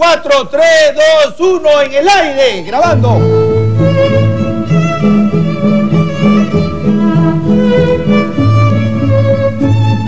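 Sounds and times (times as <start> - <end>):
instrumental music with bowed strings: 2.8 - 10.0.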